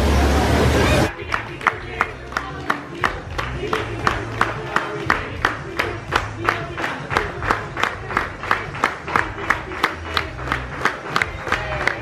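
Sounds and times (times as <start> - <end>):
voices singing or chanting: 0.0 - 10.5
people clapping in unison: 1.1 - 12.0.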